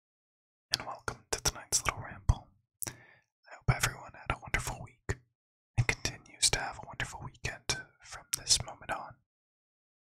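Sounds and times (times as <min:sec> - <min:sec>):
man whispering: 0:00.7 - 0:05.2, 0:05.8 - 0:09.2.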